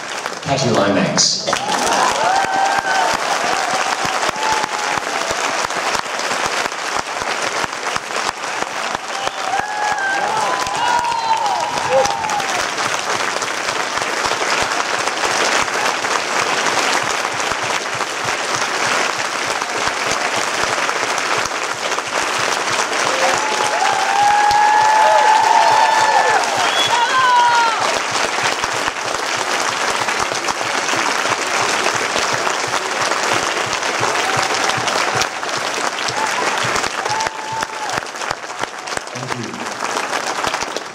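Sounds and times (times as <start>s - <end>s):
audience applauding: 0.0s - 40.9s.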